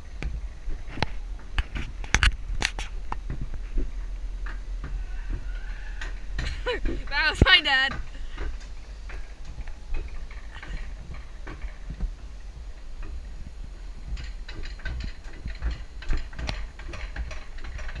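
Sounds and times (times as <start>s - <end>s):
cart rumbling along track: 0.0s - 18.0s
wheels clacking on rail: 0.0s - 18.0s.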